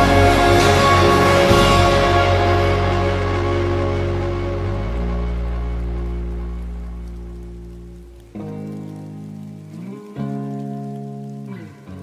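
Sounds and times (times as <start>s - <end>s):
rain pattering: 0.0s - 12.0s
soft music with low chord: 0.0s - 12.0s.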